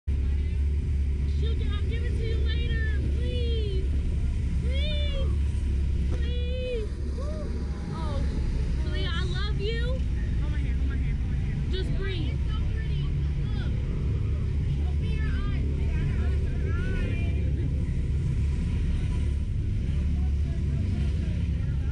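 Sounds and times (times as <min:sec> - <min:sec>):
wind rumble on camera: 0:00.1 - 0:21.9.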